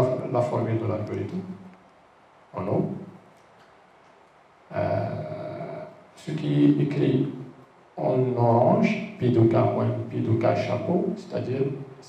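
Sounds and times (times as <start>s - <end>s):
man's drawn-out hesitation sound: 4.7s - 7.4s.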